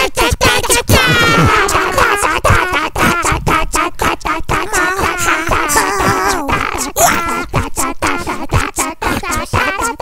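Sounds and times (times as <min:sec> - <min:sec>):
quick clicking beat: 0:00.0 - 0:10.0
squeaky animal-like calls singing melody: 0:00.0 - 0:10.0.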